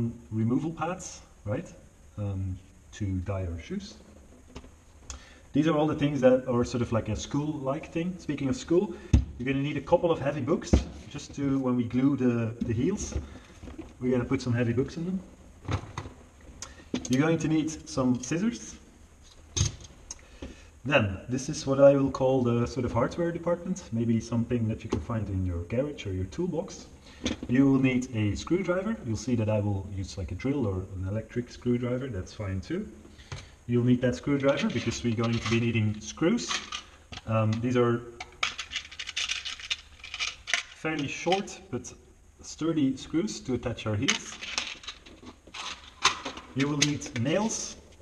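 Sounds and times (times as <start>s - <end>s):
screws rattling in a box: 36.4s - 37.3s, 38.3s - 41.4s, 44.1s - 47.4s.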